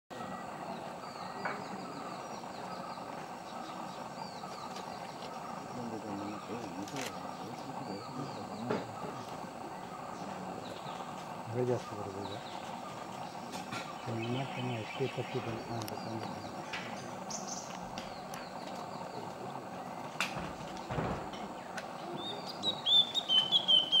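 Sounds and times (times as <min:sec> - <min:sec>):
bird chirping: 0:00.1 - 0:24.0
forest background hiss: 0:00.2 - 0:24.0
songbird whistled notes: 0:22.1 - 0:24.0.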